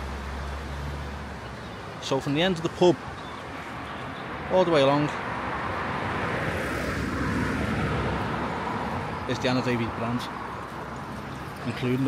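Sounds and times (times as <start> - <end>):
car passing: 0.0 - 12.0.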